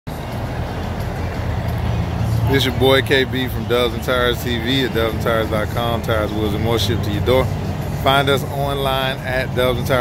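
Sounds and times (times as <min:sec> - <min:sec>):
low vehicle rumble: 0:00.1 - 0:10.0
traffic noise: 0:00.1 - 0:10.0.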